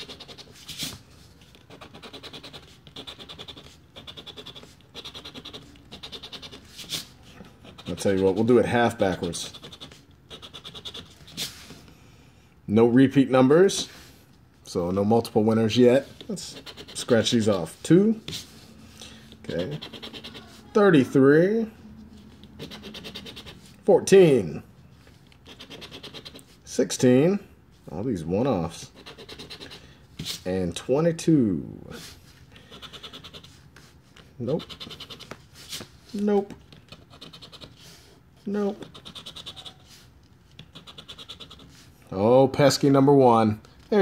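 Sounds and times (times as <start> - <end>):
scratching lottery ticket: 0.0 - 11.6, 16.0 - 18.6, 19.5 - 20.8, 22.3 - 23.7, 25.4 - 26.6, 28.7 - 29.8, 34.4 - 35.4, 36.1 - 37.8, 38.5 - 41.9.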